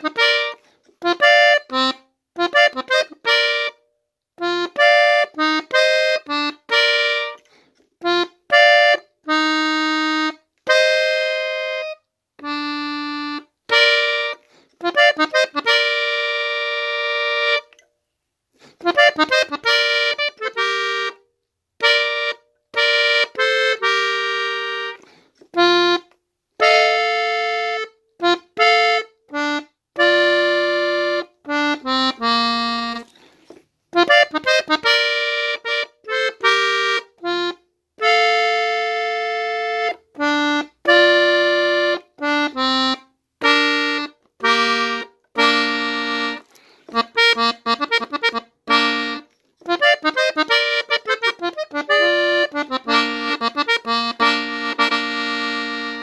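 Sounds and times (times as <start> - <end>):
button accordion melody: 0.0 - 17.9, 18.6 - 56.0.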